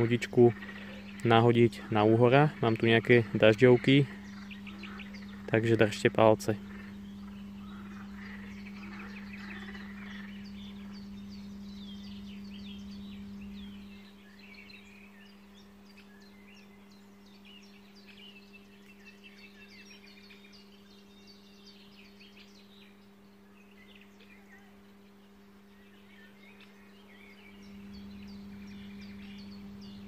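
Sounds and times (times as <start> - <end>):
small birds chirping: 0.0 - 30.0
steady low hum: 0.0 - 30.0.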